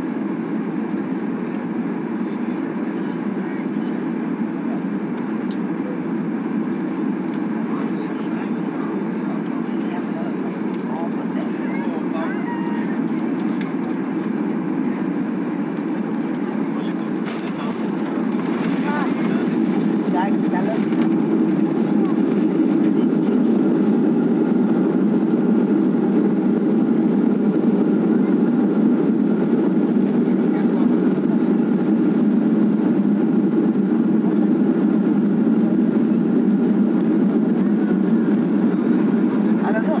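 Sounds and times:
jet engine and airflow roar: 0.0 - 40.0.

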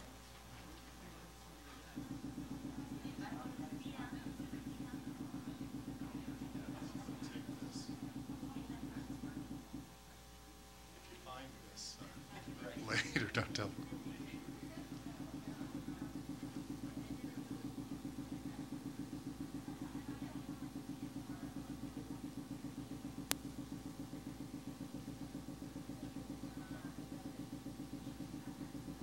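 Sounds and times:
pulsing low hum: 1.8 - 10.1, 12.0 - 29.0.

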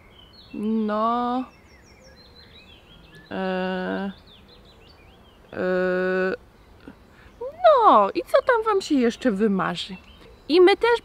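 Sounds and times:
woman's puppet voice: 7.4 - 11.0.

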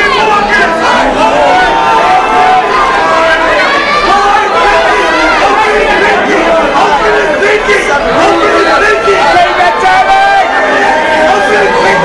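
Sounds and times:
crowd shouting and yelling: 0.0 - 12.0.

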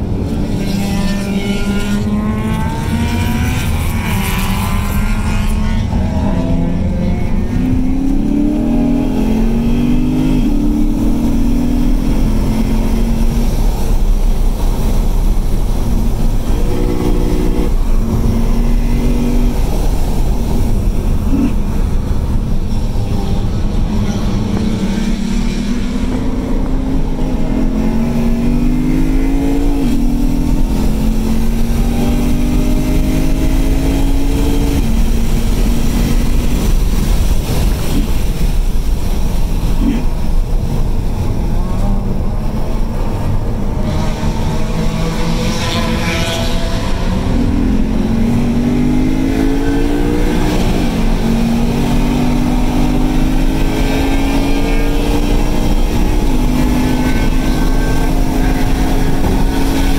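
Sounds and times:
car engine accelerating: 0.0 - 59.9
road noise: 0.0 - 59.9.

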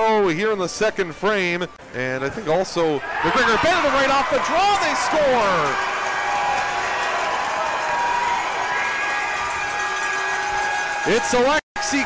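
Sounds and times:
applause and cheering: 3.2 - 12.0.

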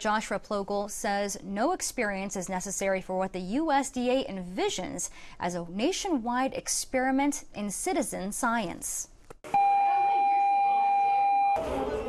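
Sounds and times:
electronic bell tone: 9.5 - 12.0.

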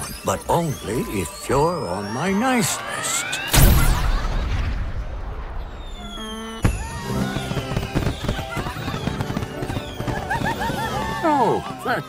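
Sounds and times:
rising chime tones: 0.0 - 4.0
firework bang: 3.5 - 10.6
firework crackling bursts: 3.5 - 11.4
falling whistle: 5.7 - 11.3
music: 6.8 - 12.0.

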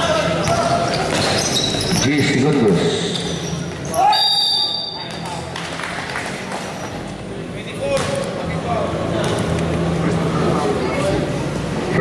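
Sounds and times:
crowd chatter: 0.0 - 12.0
referee's whistle: 3.9 - 5.1.

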